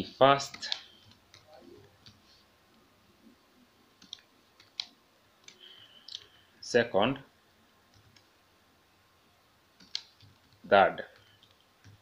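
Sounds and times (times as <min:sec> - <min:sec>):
person speaking: 0:00.0 - 0:02.5, 0:10.6 - 0:11.3
computer keyboard keystrokes: 0:04.0 - 0:05.6, 0:09.8 - 0:10.6.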